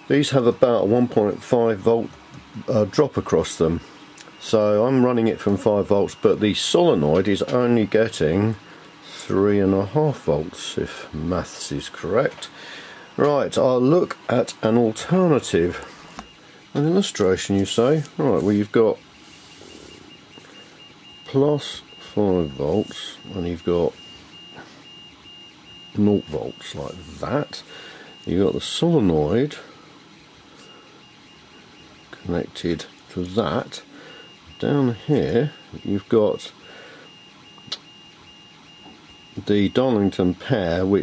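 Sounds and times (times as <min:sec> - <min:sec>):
rapid faint electronic beeps: 0:00.0 - 0:41.0.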